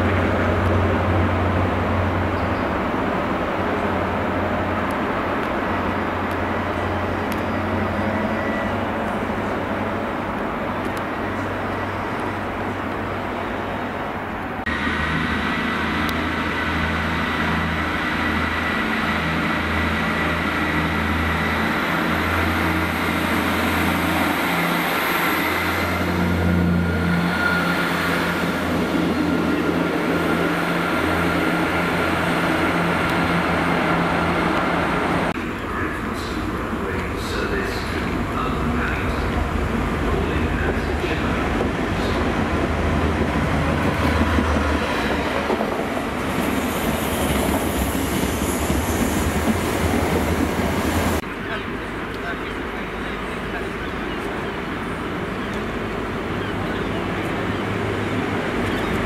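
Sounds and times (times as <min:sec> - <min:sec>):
train diesel engine running: 0:00.0 - 0:59.0.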